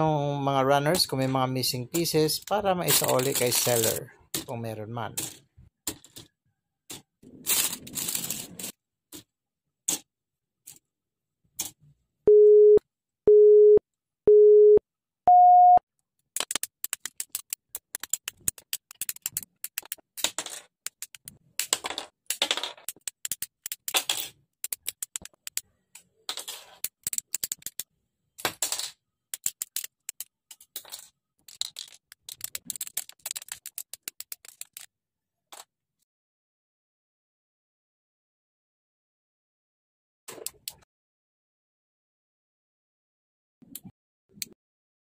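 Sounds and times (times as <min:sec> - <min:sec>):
electronic beeps: 0:12.3 - 0:15.8
nippers cutting plastic parts: 0:22.8 - 0:26.1.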